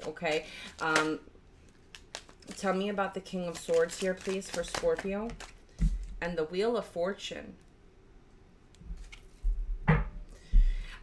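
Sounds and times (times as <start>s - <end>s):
cards being shuffled: 0.0s - 6.1s, 9.0s - 9.4s.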